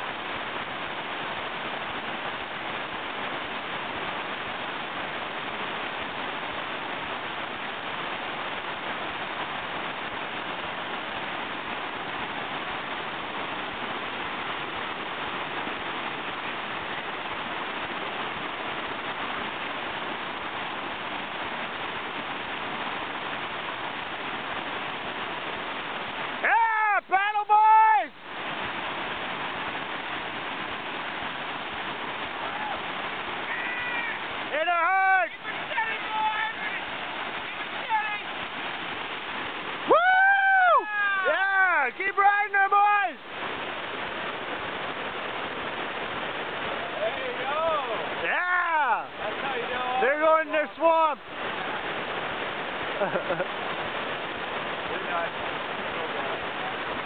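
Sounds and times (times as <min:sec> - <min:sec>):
river rapids rushing: 0:00.0 - 0:57.0
person yelling: 0:26.4 - 0:28.2, 0:32.4 - 0:32.8, 0:33.5 - 0:36.8, 0:37.8 - 0:38.3, 0:39.9 - 0:43.2, 0:47.5 - 0:49.1, 0:49.8 - 0:51.2.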